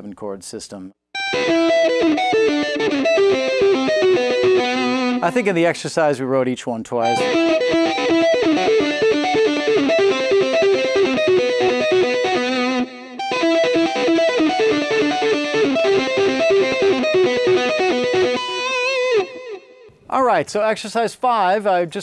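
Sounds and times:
electric guitar arpeggio: 1.2 - 5.6, 7.0 - 19.9.

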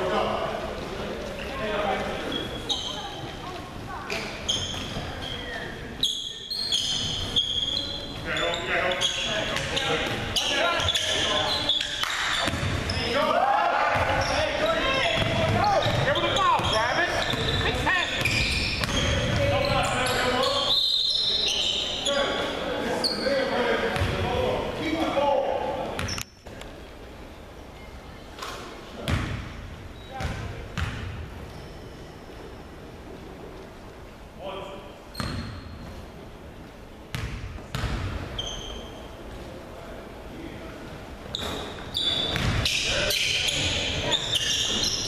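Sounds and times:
basketball bouncing: 12.4 - 12.9, 15.2 - 17.6, 29.1 - 29.4, 30.2 - 31.2, 37.1 - 38.2, 42.3 - 42.7.

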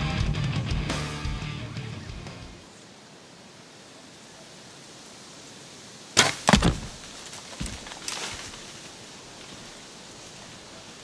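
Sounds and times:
background music: 0.0 - 2.6
faint woodland ambience hiss: 0.0 - 11.0.

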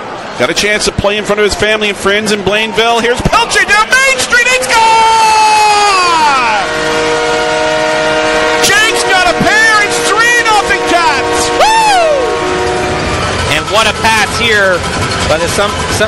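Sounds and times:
people shouting: 3.2 - 14.2
goal horn multi-tone chord: 6.3 - 14.4.

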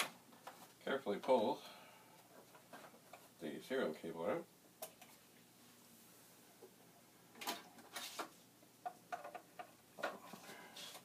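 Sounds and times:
plastic clicks and knocks: 8.8 - 10.2.

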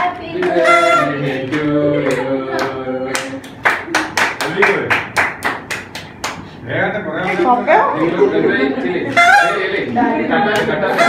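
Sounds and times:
hands clapping in rhythm: 0.4 - 0.6, 1.5 - 6.6, 10.5 - 10.8.

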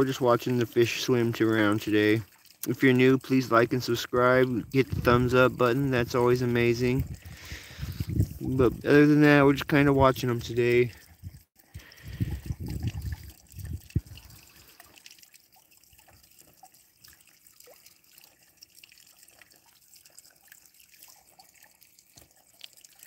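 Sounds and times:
water trickling and dripping: 0.0 - 23.0
low rumble on microphone: 4.5 - 9.0, 12.0 - 14.4.

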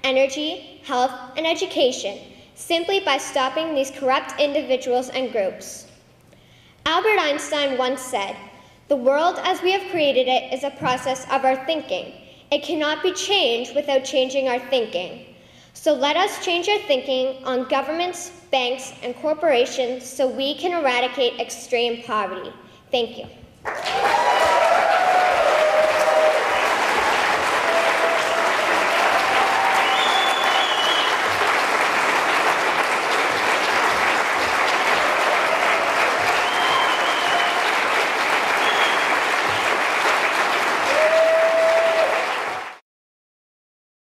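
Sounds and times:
audience applauding: 23.7 - 42.8.

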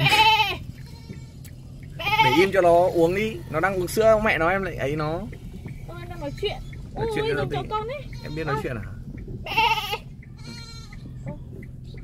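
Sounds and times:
goats bleating: 0.0 - 4.6, 5.3 - 6.7, 7.3 - 11.3.

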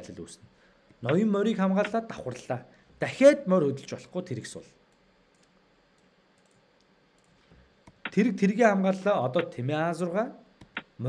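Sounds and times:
computer mouse clicks: 4.9 - 8.2, 10.6 - 10.9.

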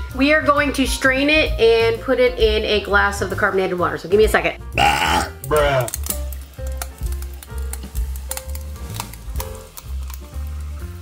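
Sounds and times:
carbonated water fizzing on ice: 5.6 - 11.0.

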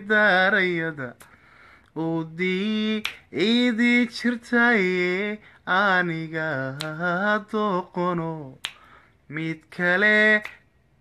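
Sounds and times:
man singing unaccompanied: 0.0 - 1.3, 1.9 - 10.7
finger snap: 0.6 - 11.0.

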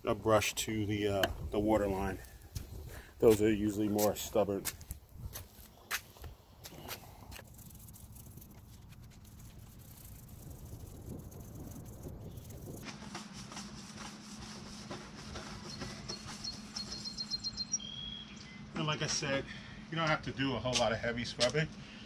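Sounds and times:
faint outdoor ambience: 0.0 - 22.0
low hum with light ticks: 20.0 - 22.0.

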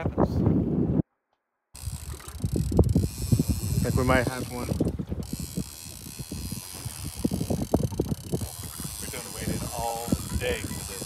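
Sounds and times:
wind buffeting microphone: 0.0 - 1.0, 1.8 - 11.0.

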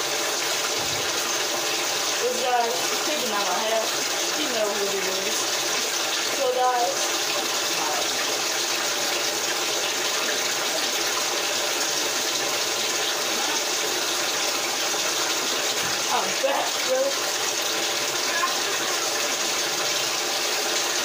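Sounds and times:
shower water running: 0.0 - 21.0.

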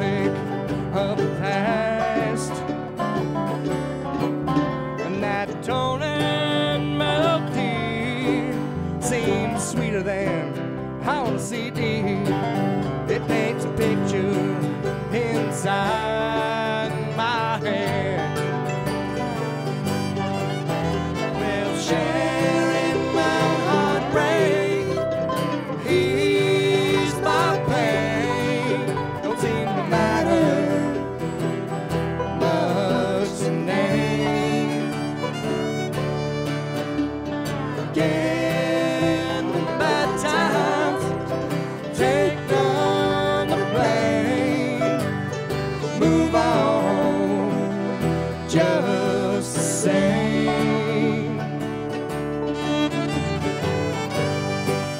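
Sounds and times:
dobro: 0.0 - 54.9
fiddle: 0.0 - 54.9
mandolin: 0.0 - 54.9
strummed acoustic guitar: 0.0 - 54.9
upright bass: 0.0 - 54.9.

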